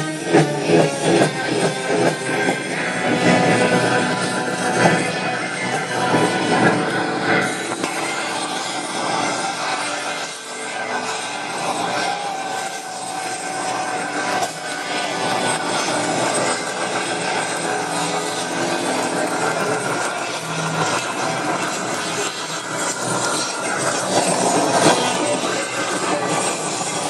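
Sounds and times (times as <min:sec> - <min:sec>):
distorted live rock band: 0:00.0 - 0:27.0.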